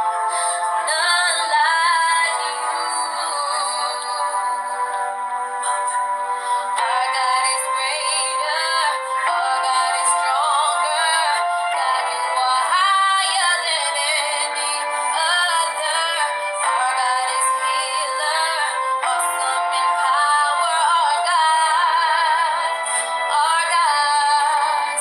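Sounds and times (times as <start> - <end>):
electronic keyboard chords: 0.0 - 25.0
girl singing: 0.8 - 4.8, 6.8 - 25.0.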